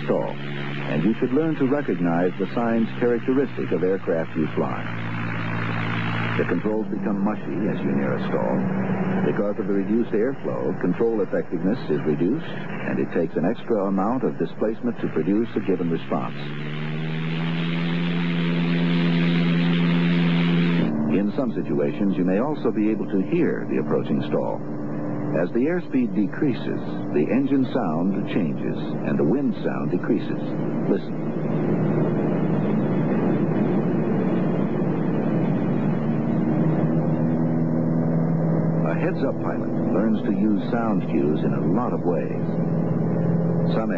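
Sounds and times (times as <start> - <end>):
propeller airplane engine drone: 0.0 - 43.9
wind rushing: 30.5 - 37.7.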